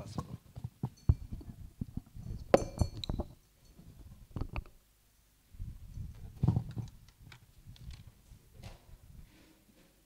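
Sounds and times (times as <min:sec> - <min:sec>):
high clink ringing: 0:02.3 - 0:03.8.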